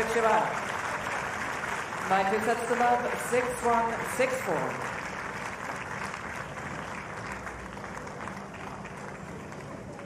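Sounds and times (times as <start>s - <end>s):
spectators clapping: 0.0s - 10.0s.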